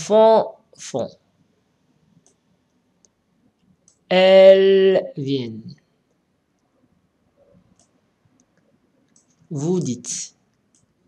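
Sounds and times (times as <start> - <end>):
person speaking: 0.0 - 1.1, 4.1 - 5.8, 9.5 - 10.4
computer mouse clicks: 2.1 - 4.1, 7.4 - 9.5, 10.4 - 11.0.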